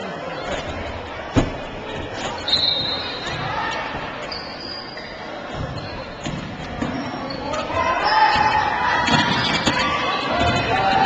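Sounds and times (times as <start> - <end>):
spectators' voices: 0.0 - 11.0
high sneaker squeak: 2.1 - 10.3.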